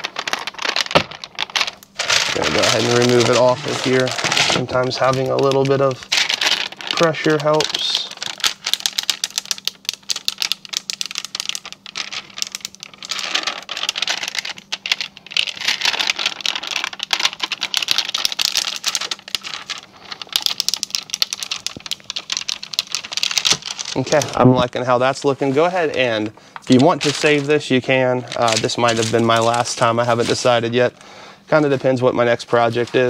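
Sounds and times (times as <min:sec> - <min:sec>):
plastic film peeling and crackling: 0:00.0 - 0:31.0, 0:31.6 - 0:33.0.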